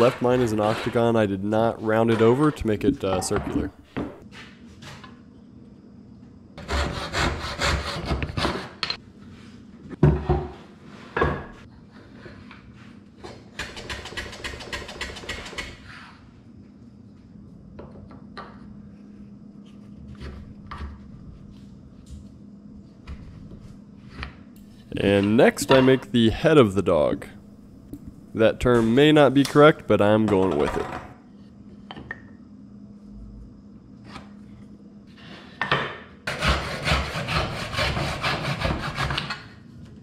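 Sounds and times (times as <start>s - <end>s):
backsaw cutting wood: 36.3s - 39.2s.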